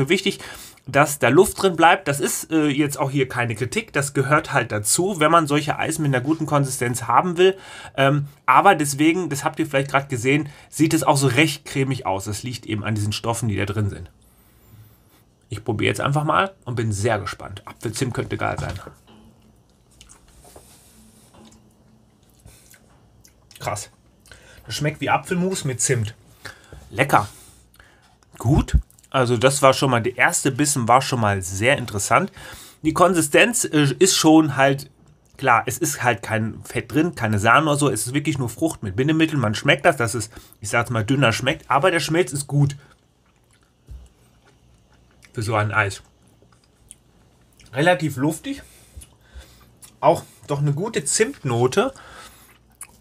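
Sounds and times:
mouth sounds of eating: 19.4s - 24.6s, 48.6s - 50.6s, 51.3s - 53.0s.

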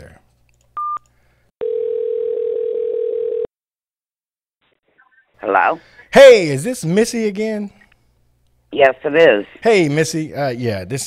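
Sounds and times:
telephone ringback tone: 1.6s - 3.5s.

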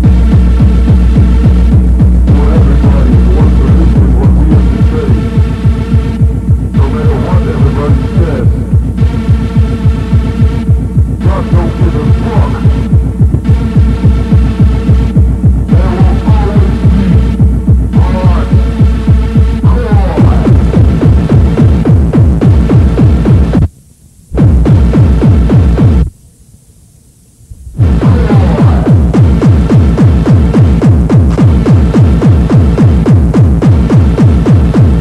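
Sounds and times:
electronic dance music: 0.0s - 23.7s, 24.4s - 26.1s, 27.6s - 35.0s
fast kick drum: 0.0s - 23.7s, 24.4s - 26.1s, 27.8s - 35.0s
droning synth tone: 0.0s - 35.0s.

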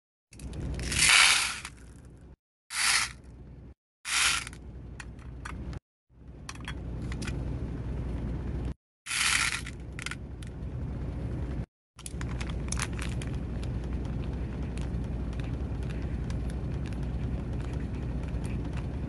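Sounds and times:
stone beads rattling into bowl: 9.1s - 9.8s.

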